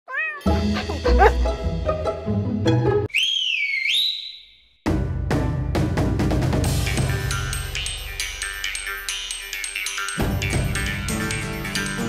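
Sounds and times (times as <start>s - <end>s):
high swooping whistle: 3.1s - 4.6s
theme music with heavy bass beat: 4.9s - 8.4s, 10.2s - 12.0s.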